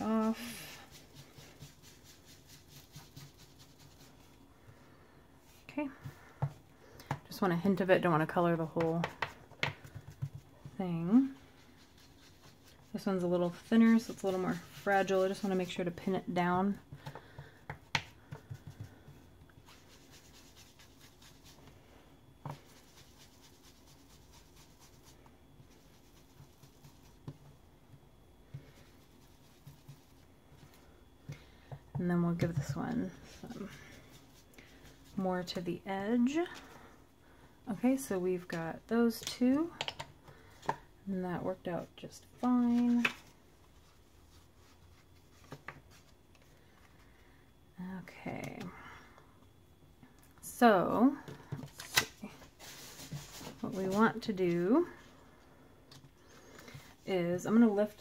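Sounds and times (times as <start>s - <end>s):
foam tool dabbing on paper: 0.0s - 4.3s.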